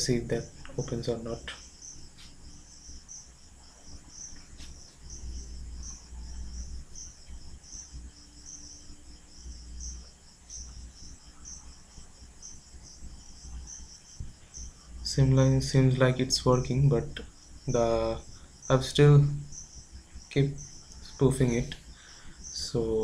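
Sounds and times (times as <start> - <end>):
crickets chirping: 0.0 - 23.0
low hum: 0.0 - 23.0.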